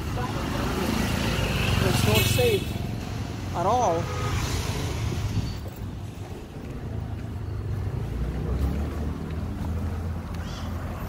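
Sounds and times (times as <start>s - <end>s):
street traffic rumble: 0.0s - 11.0s
wind on microphone: 4.8s - 6.8s.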